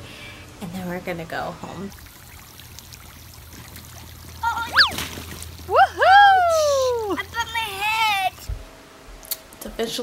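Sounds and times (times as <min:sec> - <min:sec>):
water trickling on slide: 0:01.9 - 0:06.0.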